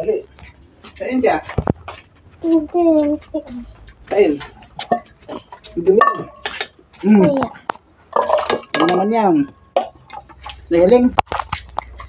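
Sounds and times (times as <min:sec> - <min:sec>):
person making wordless sounds: 0:02.4 - 0:07.8.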